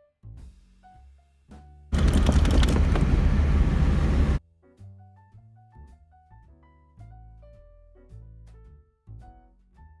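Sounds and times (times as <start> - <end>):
soft keyboard music: 0.0 - 10.0
road noise: 2.0 - 4.4
wind rushing through car window: 2.0 - 4.4.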